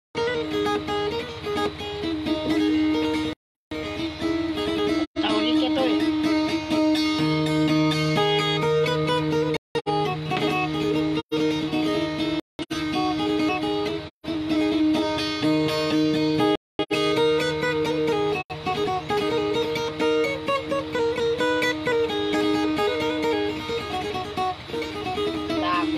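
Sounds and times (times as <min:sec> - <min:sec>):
plucked guitar: 0:00.2 - 0:25.9.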